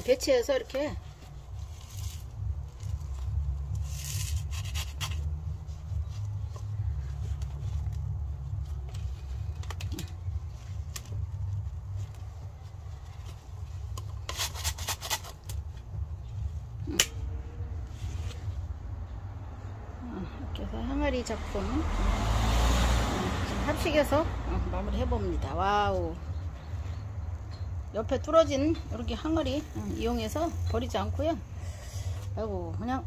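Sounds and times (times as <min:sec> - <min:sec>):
steady low rumble: 0:00.0 - 0:14.3, 0:15.3 - 0:22.2, 0:23.1 - 0:33.0.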